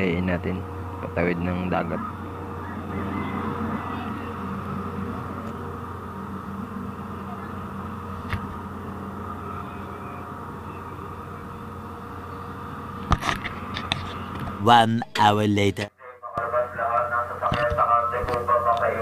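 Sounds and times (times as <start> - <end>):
ferry engine low drone: 0.0 - 19.0.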